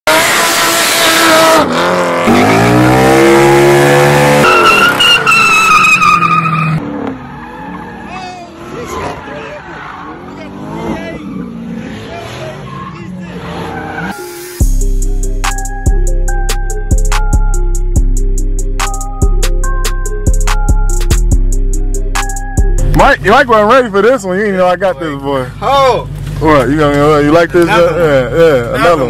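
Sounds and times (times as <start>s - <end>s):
car engines revving hard: 0.0s - 14.2s
tires squealing: 0.1s - 14.6s
voices: 7.6s - 14.1s, 22.9s - 29.0s.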